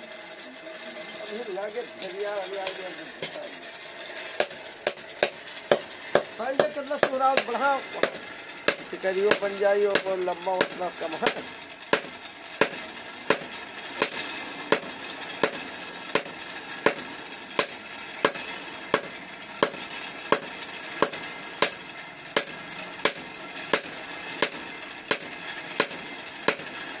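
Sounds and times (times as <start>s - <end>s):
hammer striking metal on anvil: 4.4s - 26.8s.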